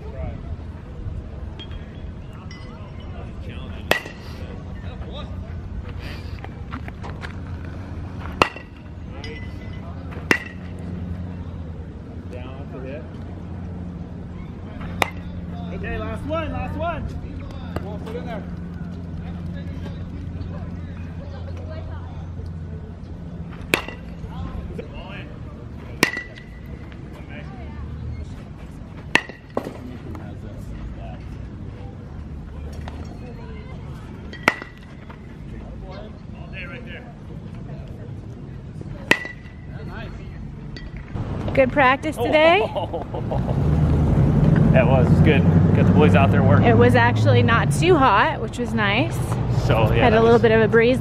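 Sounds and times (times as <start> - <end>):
metal bat hitting baseball: 3.8 - 4.2, 8.3 - 9.5, 10.2 - 10.8, 14.8 - 15.4, 23.6 - 24.2, 26.0 - 26.8, 29.1 - 29.9, 34.3 - 35.0, 39.1 - 39.6.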